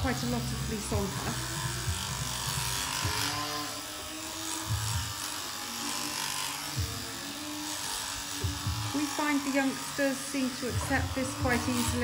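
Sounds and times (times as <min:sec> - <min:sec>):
electric shears running: 0:00.0 - 0:12.0.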